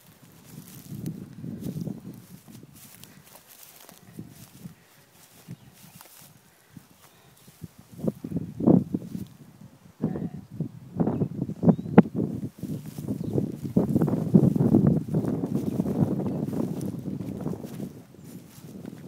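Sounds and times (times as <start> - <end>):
footsteps crunching on dirt and grass: 0.0 - 9.4, 12.2 - 19.0.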